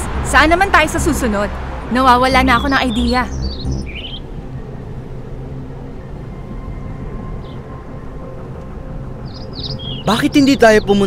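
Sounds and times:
low background ambience: 0.0 - 11.0
bird chirps: 2.2 - 4.4, 9.2 - 11.0.

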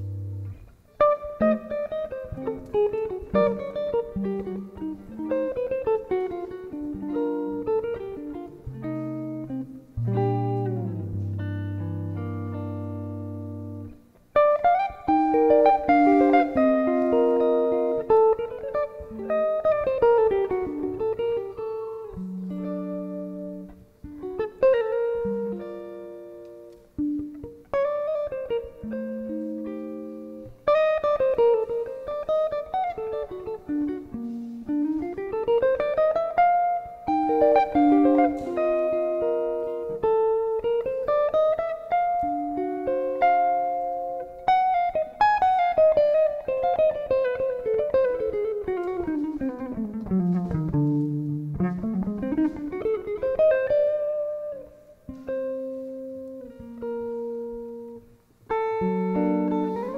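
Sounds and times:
electric guitar melody: 0.0 - 59.9.

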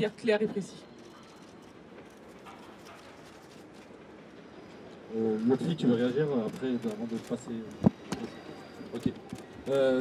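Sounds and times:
crowd murmur outdoors: 0.0 - 10.0.

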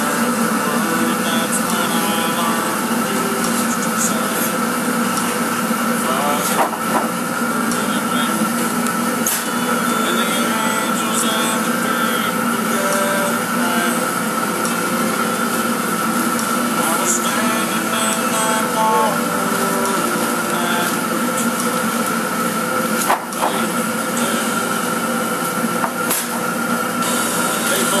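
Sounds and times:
seeder machine humming: 0.0 - 28.0.

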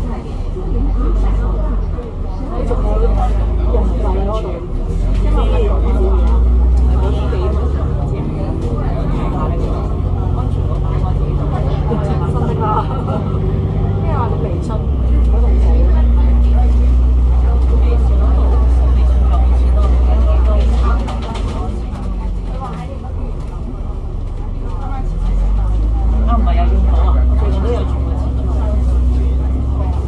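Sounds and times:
bus diesel engine running: 0.0 - 30.0.

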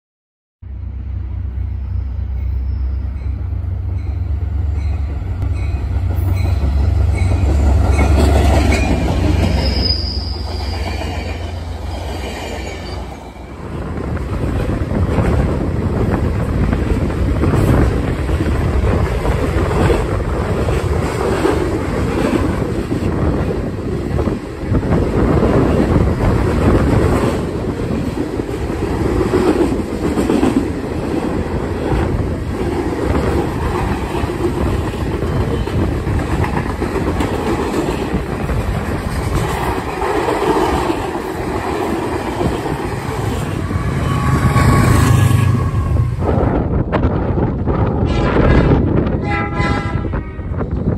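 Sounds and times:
train rumbling on rails: 0.6 - 50.9
squealing train wheels: 1.6 - 13.6, 42.3 - 46.2.

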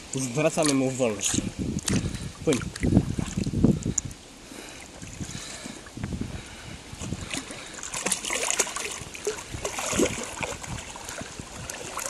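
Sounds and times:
lake water sloshing and splashing: 0.0 - 12.0
water lapping: 0.0 - 12.0.

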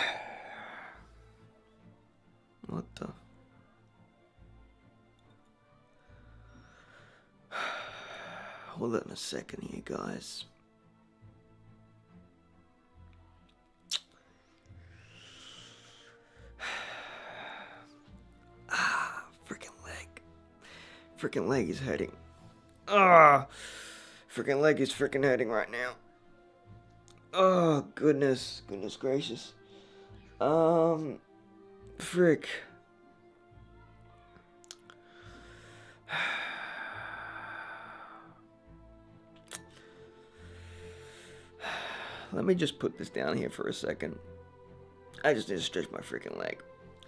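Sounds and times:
man sighing heavily: 0.0 - 1.0, 35.2 - 38.4
man breathing out: 0.0 - 1.2, 6.1 - 8.7, 14.3 - 18.1, 23.5 - 24.3, 34.9 - 38.4, 39.7 - 42.4
faint background music: 0.0 - 47.0.

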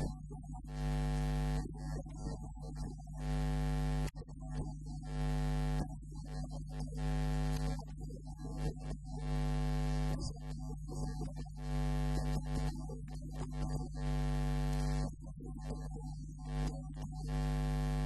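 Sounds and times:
man chanting: 0.0 - 3.3, 4.2 - 18.0
electrical mains hum: 0.0 - 18.0.

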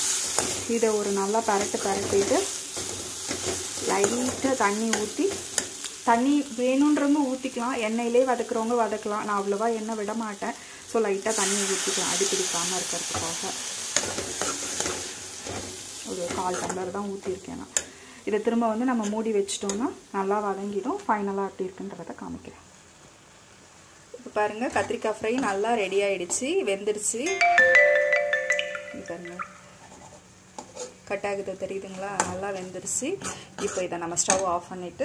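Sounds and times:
vegetables sizzling in oil: 0.0 - 27.2, 29.6 - 35.0
metal spoon scraping pan: 29.9 - 31.0, 33.2 - 34.4.

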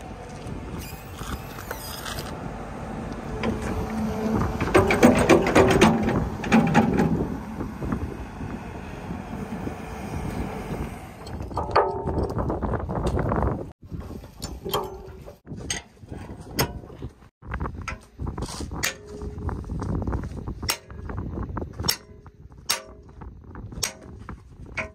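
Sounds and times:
steel parts creaking and clanking: 0.3 - 2.4, 3.3 - 8.0, 10.2 - 19.9, 20.6 - 24.9.

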